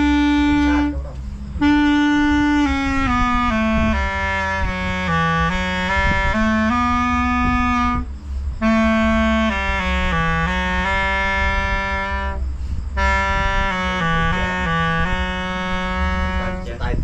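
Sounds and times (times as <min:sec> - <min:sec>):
clarinet melody: 0:00.0 - 0:17.0.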